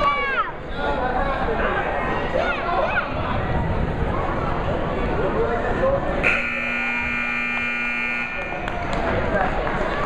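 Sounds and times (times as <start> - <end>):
scoreboard buzzer: 6.2 - 8.6.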